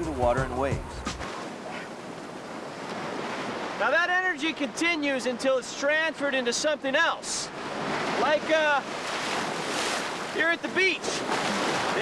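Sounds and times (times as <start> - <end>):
surf washing up sand: 7.5 - 12.0.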